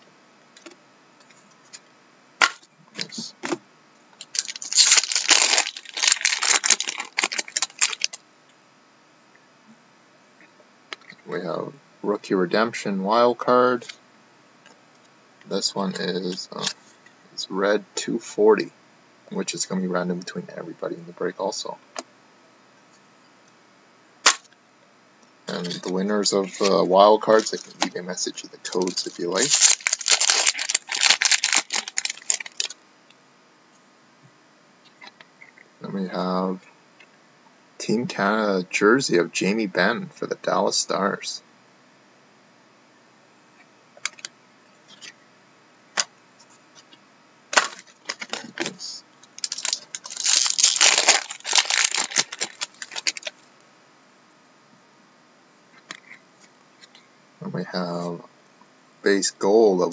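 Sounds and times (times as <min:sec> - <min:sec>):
cards and packaging handled: 0:04.2 - 0:08.2, 0:25.5 - 0:28.0, 0:28.6 - 0:32.8, 0:47.5 - 0:53.4.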